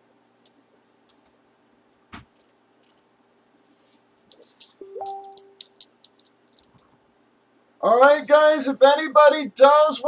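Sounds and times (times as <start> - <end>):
small items clicking on tabletop: 4.3 - 6.9.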